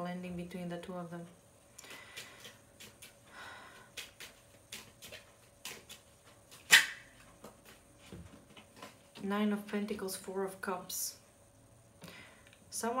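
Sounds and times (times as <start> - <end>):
playing cards clicking and sliding: 3.9 - 7.8
sharp card snap: 6.5 - 7.1.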